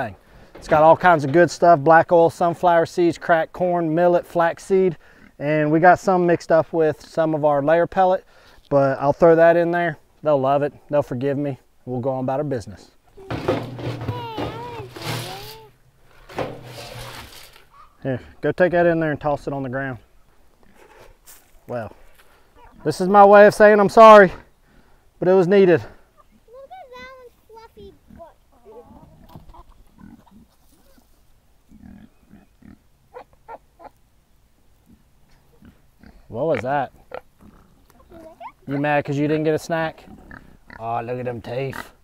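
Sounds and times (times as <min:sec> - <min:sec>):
feed rustling and hissing: 0:13.2 - 0:17.7
scoop digging into feed: 0:16.2 - 0:17.7
hens clucking: 0:22.5 - 0:23.2, 0:27.0 - 0:31.1
hens pecking at seed: 0:27.2 - 0:31.9.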